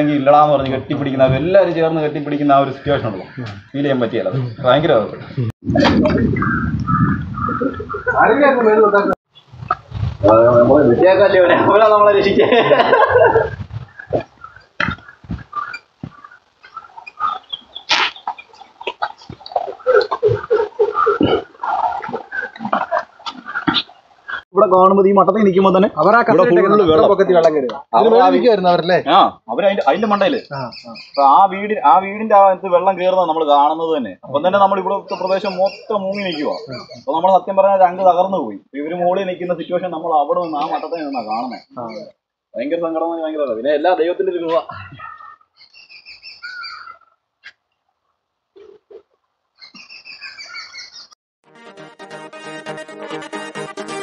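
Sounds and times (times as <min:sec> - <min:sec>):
bird warbling call: 0:06.2 - 0:08.2, 0:13.7 - 0:24.4, 0:35.1 - 0:37.1, 0:45.0 - 0:47.2, 0:49.6 - 0:51.1.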